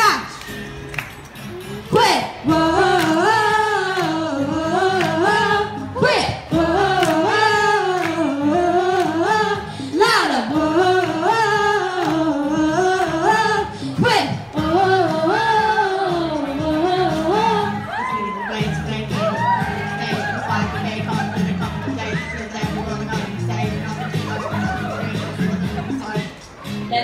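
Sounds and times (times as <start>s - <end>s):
backing track music: 0.0s - 27.0s
woman singing into microphone: 1.9s - 18.4s.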